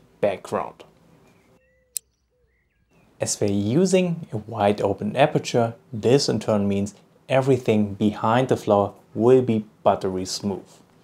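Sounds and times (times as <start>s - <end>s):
faint birdsong: 0.0s - 7.3s
sharp click: 1.3s - 2.3s.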